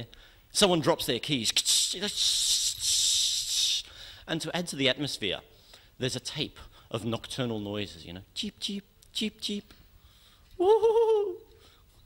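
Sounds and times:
man making hissing rattling mouth noise: 1.6s - 4.0s.

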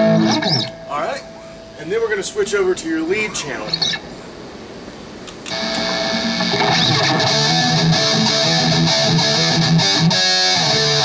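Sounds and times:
distorted electric guitar notes: 0.0s - 1.8s, 5.5s - 11.0s
amplifier hiss: 0.0s - 11.0s.

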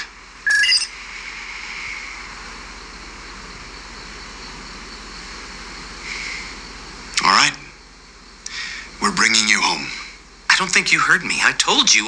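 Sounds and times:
background hiss: 0.0s - 12.0s
electronic chirp of rising beeps: 0.4s - 0.9s.

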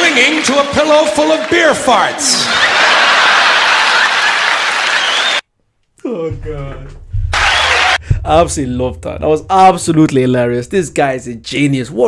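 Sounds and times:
audience applauding: 0.0s - 5.4s, 7.3s - 8.0s.

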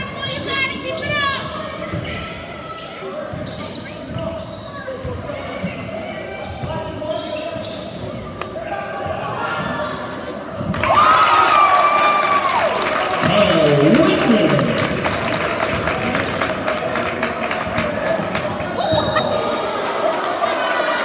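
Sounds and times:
spectators chattering: 12.6s - 21.0s
person calling out: 13.3s - 14.8s.

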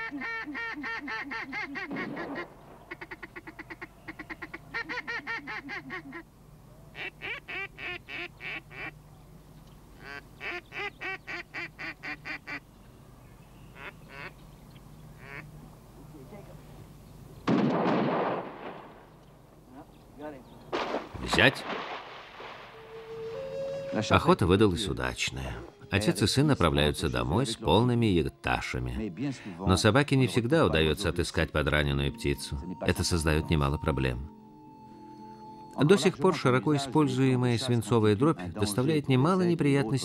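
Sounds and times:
duck call rapid quacks: 0.0s - 6.2s, 7.0s - 8.9s, 10.0s - 12.6s, 13.8s - 14.3s, 15.2s - 15.5s.

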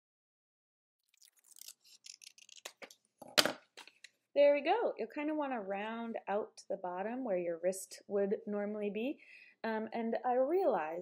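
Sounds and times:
scissors snipping paper: 1.3s - 2.9s.

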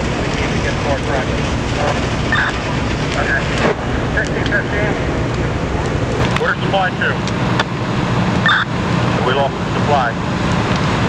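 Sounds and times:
building fire rushing: 0.0s - 11.0s
fire crackling: 0.0s - 11.0s
radio chirp: 2.3s - 2.6s, 8.4s - 8.7s.

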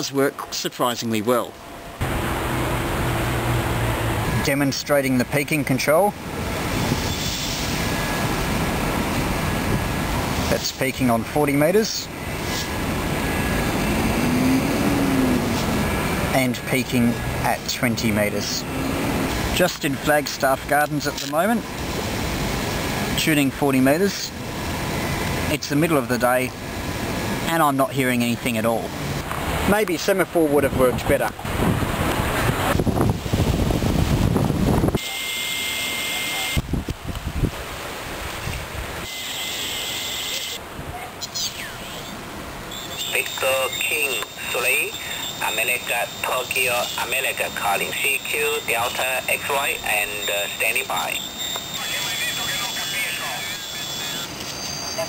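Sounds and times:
radio receiver hiss: 10.2s - 13.9s, 43.0s - 54.7s
wind buffeting microphone: 30.6s - 35.0s, 36.6s - 37.7s.

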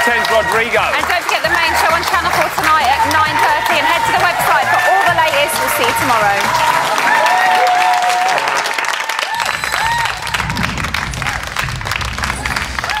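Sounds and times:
audience applauding and cheering: 0.0s - 13.0s
heavy bass beat: 1.4s - 6.6s, 9.6s - 13.0s.

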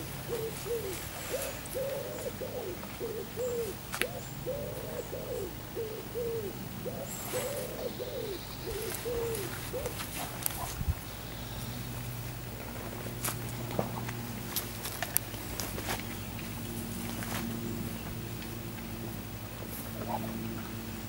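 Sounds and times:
dove cooing: 0.0s - 10.8s, 19.8s - 21.0s.

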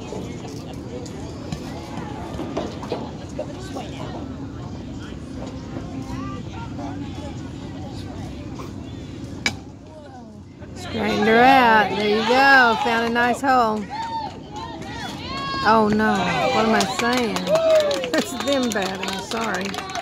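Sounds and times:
spectators chattering: 0.0s - 20.0s.

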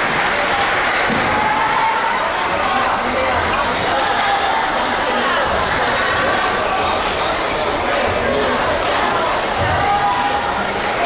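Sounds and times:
overlapping voices in echoing hall: 0.0s - 11.0s.

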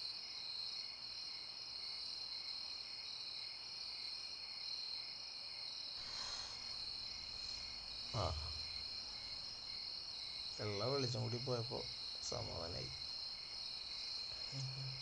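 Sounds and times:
crickets chirring: 0.0s - 15.0s
low voice: 8.1s - 8.6s, 14.4s - 15.0s.

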